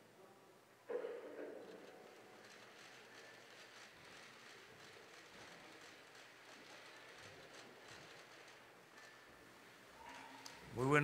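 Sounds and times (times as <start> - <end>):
soft rustles and clicks: 1.6 - 10.6.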